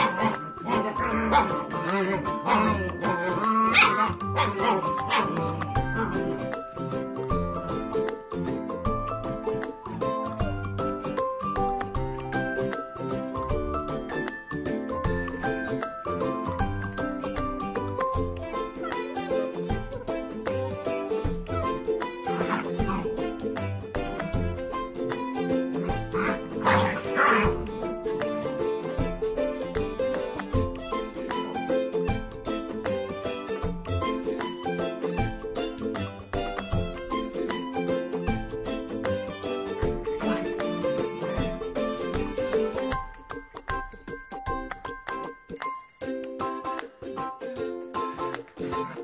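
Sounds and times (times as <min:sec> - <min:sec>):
puppies yipping: 0:00.0 - 0:06.4, 0:22.2 - 0:23.2, 0:25.8 - 0:27.7
background music with steady beat: 0:00.0 - 0:49.0.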